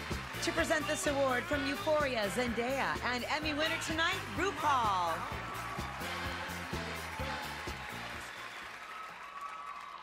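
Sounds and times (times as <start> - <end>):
audience applause: 0.0 - 2.8, 3.6 - 10.0.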